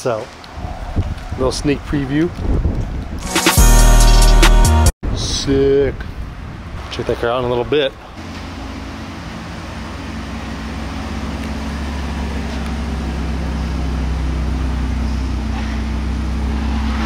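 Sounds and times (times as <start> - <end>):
car engine idling: 8.0 - 17.0.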